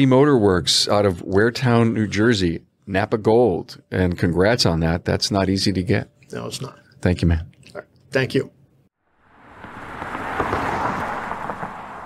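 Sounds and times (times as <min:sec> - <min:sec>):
rushing rumbling noise swell: 0:09.1 - 0:12.0.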